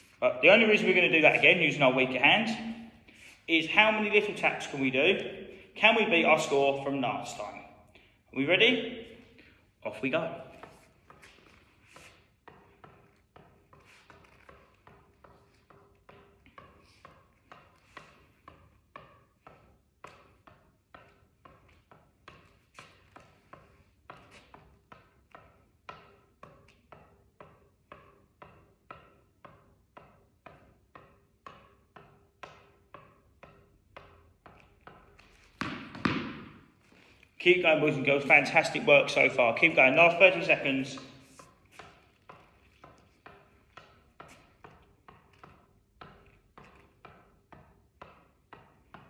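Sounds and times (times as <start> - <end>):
tennis ball tapping on racket: 8.8 - 49.0.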